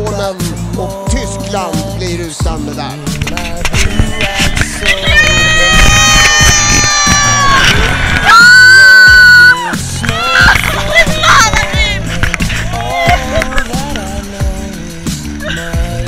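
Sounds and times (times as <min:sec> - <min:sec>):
background music: 0:00.0 - 0:16.0
fans cheering and screaming: 0:04.2 - 0:14.3
loud held scream: 0:05.0 - 0:10.6
whoops and excited shouts: 0:05.0 - 0:11.6, 0:12.7 - 0:13.4.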